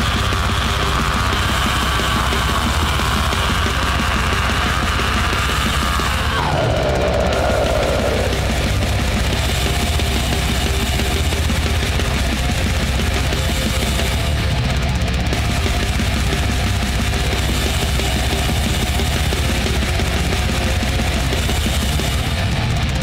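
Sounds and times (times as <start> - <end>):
distorted metal guitars: 0.0 - 23.0
steady drumming: 0.0 - 23.0.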